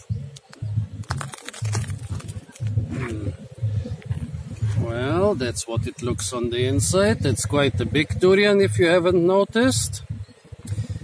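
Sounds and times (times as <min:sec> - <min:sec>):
low pulsing hum: 0:00.0 - 0:11.0
husks clicking and scraping on concrete: 0:00.3 - 0:02.8.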